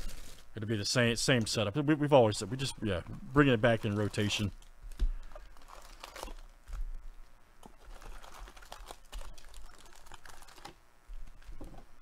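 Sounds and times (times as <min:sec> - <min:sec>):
foil packs crinkling: 0:00.0 - 0:00.6, 0:03.6 - 0:04.5, 0:05.2 - 0:06.8, 0:07.8 - 0:11.5.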